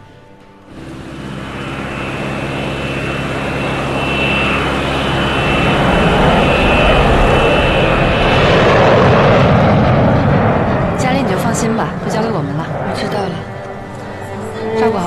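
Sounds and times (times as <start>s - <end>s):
jet engines running: 0.0s - 15.0s.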